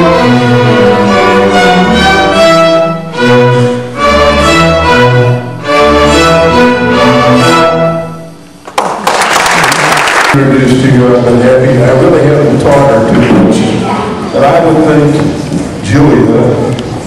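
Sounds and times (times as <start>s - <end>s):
string orchestra playing: 0.0s - 8.6s
applause: 8.7s - 10.4s.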